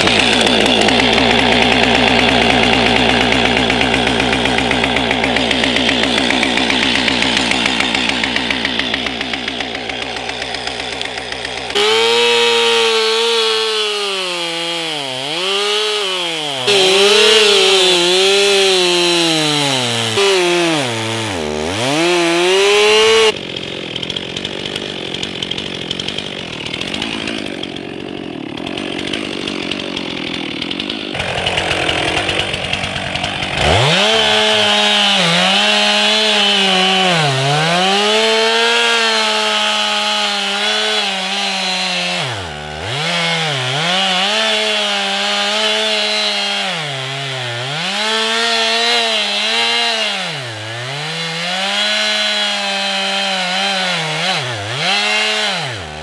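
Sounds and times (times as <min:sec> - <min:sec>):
chainsaw cutting into tree trunk: 0:00.0 - 0:56.0
chainsaw running at high revs: 0:00.0 - 0:56.0.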